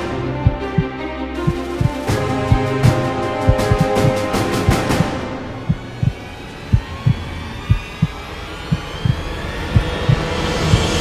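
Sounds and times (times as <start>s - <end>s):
music drone: 0.0s - 11.0s
heartbeat thumps: 0.4s - 0.9s, 1.5s - 2.7s, 3.4s - 11.0s.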